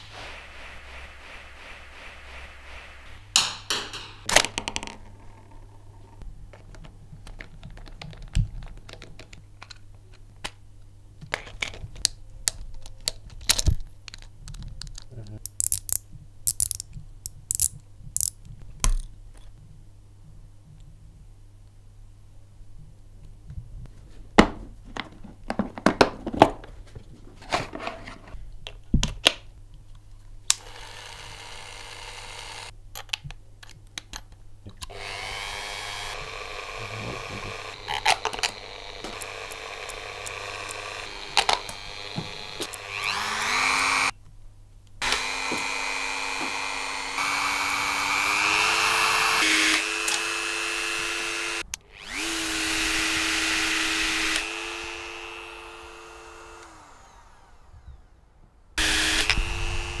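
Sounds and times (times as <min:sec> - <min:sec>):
small electric motor whining: 0:30.6 - 0:32.7, 0:34.9 - 0:44.1, 0:45.0 - 0:58.2, 0:58.8 - 1:00.0.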